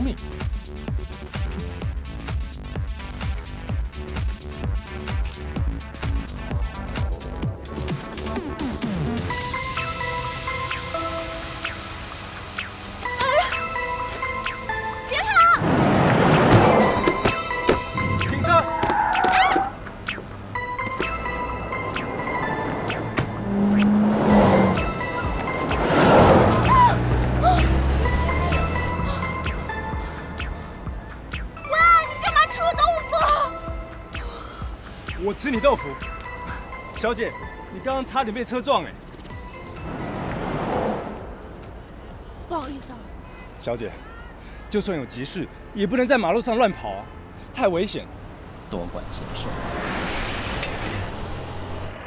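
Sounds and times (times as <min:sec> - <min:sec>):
street traffic: 0:00.0 - 0:52.0
car passing by: 0:15.6 - 0:17.3, 0:21.2 - 0:30.9, 0:39.4 - 0:42.0, 0:47.2 - 0:52.0
van engine driving past: 0:21.7 - 0:31.0, 0:48.2 - 0:52.0.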